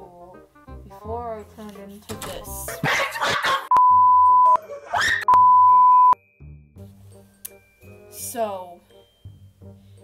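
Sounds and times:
quiet background music: 0.0 - 3.6, 6.2 - 10.0
censor bleep tones: 3.7 - 4.6, 5.3 - 6.2.

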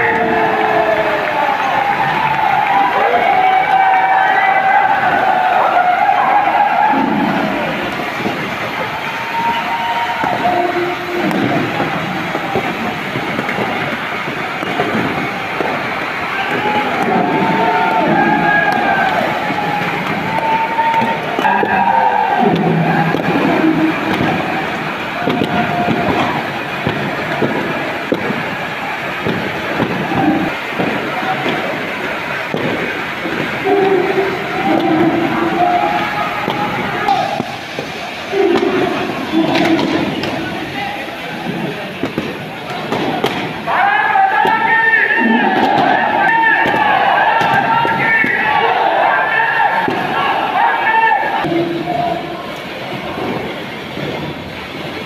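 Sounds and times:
crowd voices shouting: 0.0 - 55.0.

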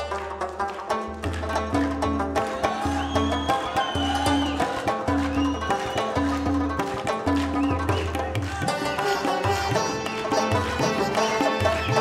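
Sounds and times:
tabla strokes: 0.0 - 12.0
sitar: 7.7 - 12.0
harmonium: 7.9 - 12.0.

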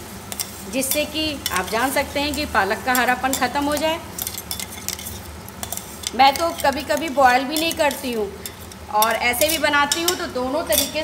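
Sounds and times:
faint sizzle from pan: 0.0 - 11.0
spoon scraping a metal pan: 0.3 - 11.0.

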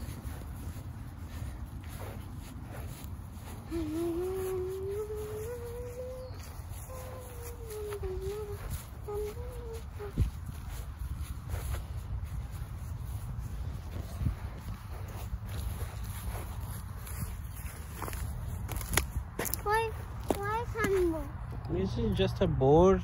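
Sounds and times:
footsteps through grass: 0.0 - 21.4
steady low rumble: 0.0 - 21.8
child's voice: 3.4 - 10.8, 19.4 - 21.6.

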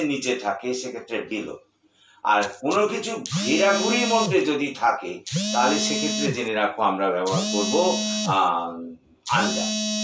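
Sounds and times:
man talking in buzzy tone: 2.3 - 10.0.

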